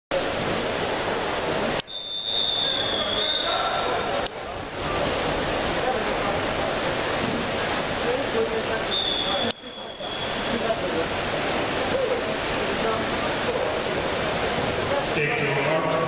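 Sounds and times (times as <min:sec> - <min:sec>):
indoor pool hall noise: 0:00.1 - 0:16.0
long high whistle: 0:01.8 - 0:04.0, 0:08.9 - 0:10.7.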